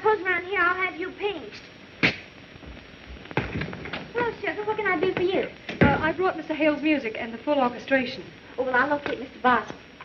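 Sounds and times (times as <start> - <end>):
sharp thud: 2.0 - 2.3.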